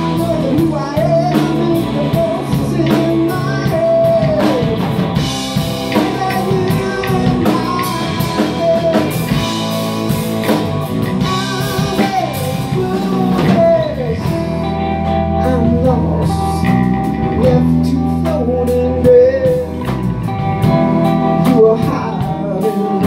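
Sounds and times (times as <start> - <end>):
bass guitar: 0.0 - 23.0
drum kit: 0.0 - 23.0
electric guitars: 0.0 - 23.0
man singing lead: 0.0 - 23.0.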